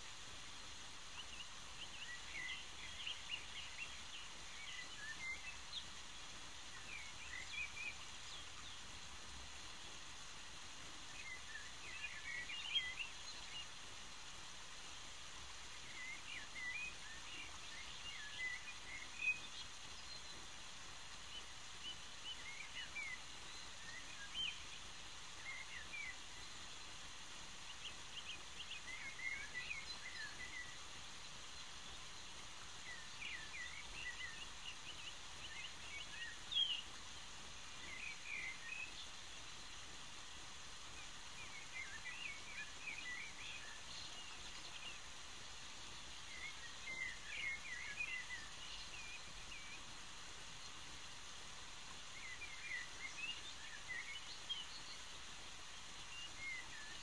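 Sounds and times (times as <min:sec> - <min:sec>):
faint birds chirping: 0:00.0 - 0:57.0
steady background hiss: 0:00.0 - 0:57.0.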